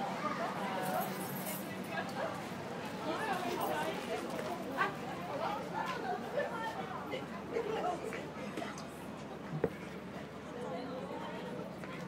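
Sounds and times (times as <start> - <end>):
passers-by talking: 0.0 - 12.0.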